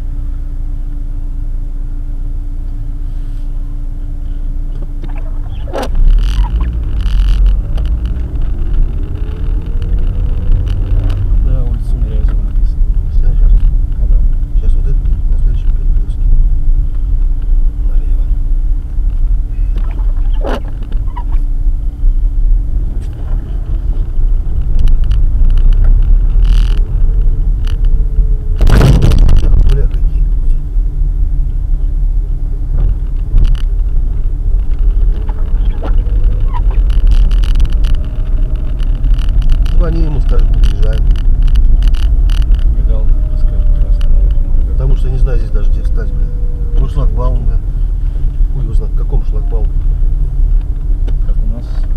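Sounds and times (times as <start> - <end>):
car engine hum: 0.0 - 51.9
tyre rumble: 4.8 - 51.9
loud thump: 28.5 - 30.1.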